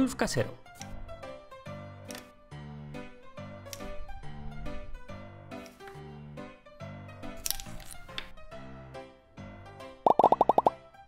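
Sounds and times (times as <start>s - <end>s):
soft background music: 0.0s - 11.0s
cartoon plop sound effects: 10.1s - 10.8s.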